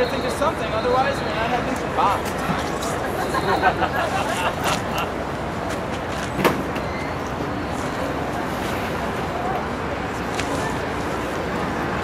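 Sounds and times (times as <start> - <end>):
distant traffic: 0.0 - 12.0.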